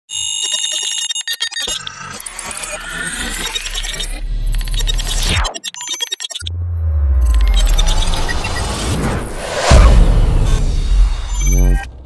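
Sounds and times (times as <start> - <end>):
buzzy alarm-like beep: 0.1 - 6.5, 7.2 - 9.1, 10.6 - 11.9
stuttering glitch pulses: 0.2 - 12.0
sudden low hit: 9.2 - 12.0.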